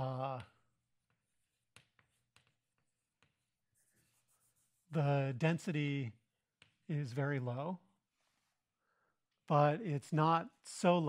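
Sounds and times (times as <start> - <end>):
chalk scratching on blackboard: 0.7 - 5.1.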